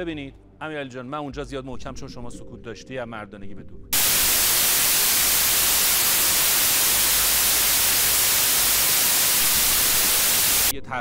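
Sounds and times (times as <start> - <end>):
white noise static hiss: 4.0 - 10.7.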